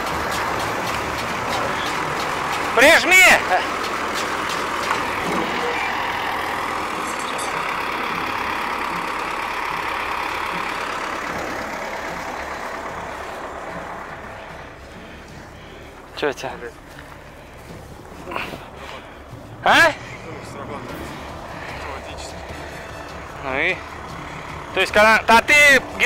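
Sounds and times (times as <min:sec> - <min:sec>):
tractor engine running: 0:00.0 - 0:26.0.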